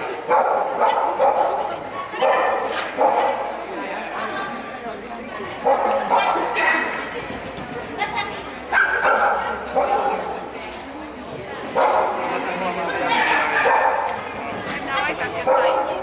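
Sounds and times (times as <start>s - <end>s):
dog barking: 0.2s - 3.5s, 5.6s - 6.8s, 8.7s - 10.4s, 11.8s - 12.2s, 13.1s - 14.2s, 15.4s - 16.0s.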